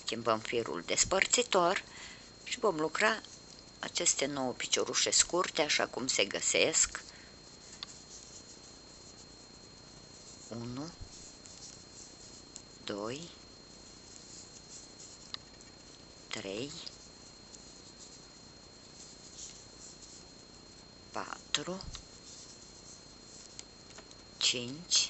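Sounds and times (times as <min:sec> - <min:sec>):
high-pitched whine: 0:00.0 - 0:25.0.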